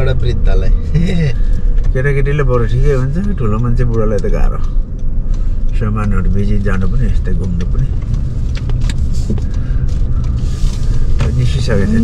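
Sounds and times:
road and engine rumble: 0:00.0 - 0:12.0.

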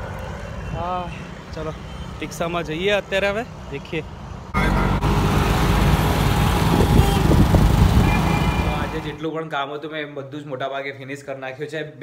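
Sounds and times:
road and wind noise: 0:00.0 - 0:09.2.

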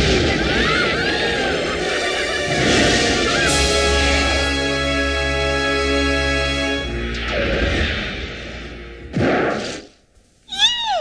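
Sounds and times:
noisy whoosh: 0:06.8 - 0:10.0.

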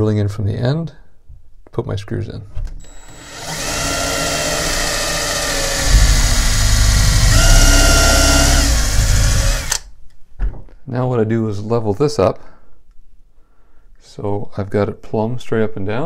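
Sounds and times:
cordless drill boring into wood: 0:02.8 - 0:09.8.

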